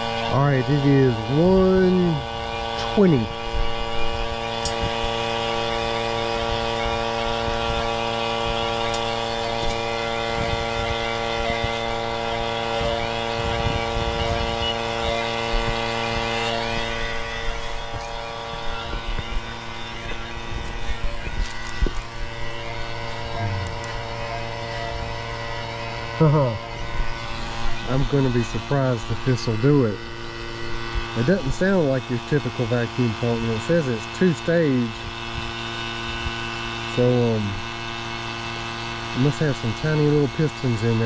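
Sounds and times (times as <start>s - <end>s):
vacuum pump humming: 0.0s - 41.0s.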